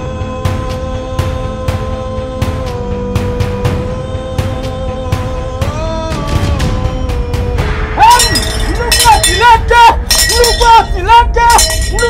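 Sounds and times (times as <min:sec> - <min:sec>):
rhythmic wordless vocal chanting: 0:00.0 - 0:12.0
bright clinking strokes: 0:08.1 - 0:12.0.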